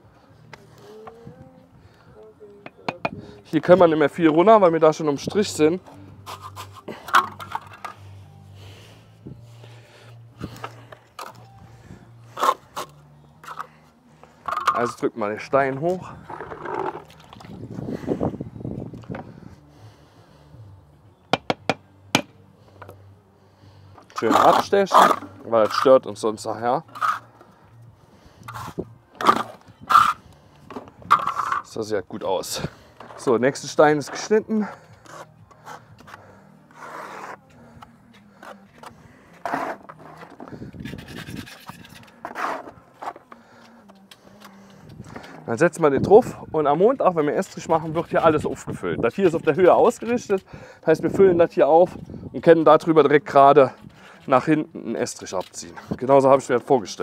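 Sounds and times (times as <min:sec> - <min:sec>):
trowel tapping concrete block: 0:02.6 - 0:03.2, 0:21.4 - 0:22.3
trowel scraping adhesive on stone: 0:06.2 - 0:08.0, 0:24.2 - 0:26.0, 0:26.9 - 0:27.3, 0:28.5 - 0:30.3, 0:31.1 - 0:31.7, 0:35.0 - 0:37.4, 0:38.4 - 0:43.2
water sloshing in bucket: 0:16.7 - 0:17.6
wet mortar being worked: 0:24.2 - 0:26.0, 0:34.0 - 0:45.3.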